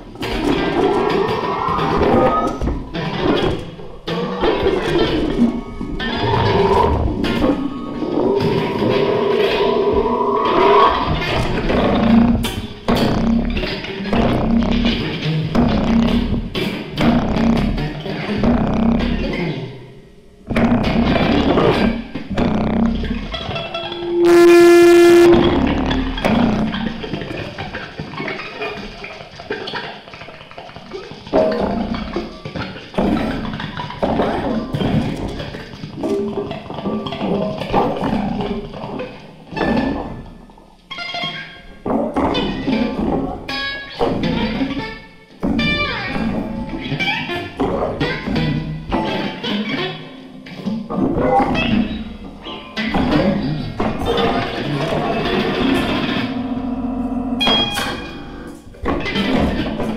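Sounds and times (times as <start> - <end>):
plucked electric guitar notes: 0.0 - 29.0, 40.9 - 59.9
loud held electronic tone: 22.6 - 27.1.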